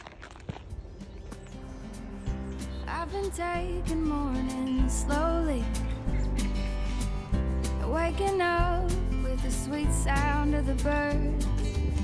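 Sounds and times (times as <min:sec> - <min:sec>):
soft music with sustained notes: 0:00.9 - 0:12.0
person singing: 0:02.8 - 0:06.2, 0:07.7 - 0:12.0.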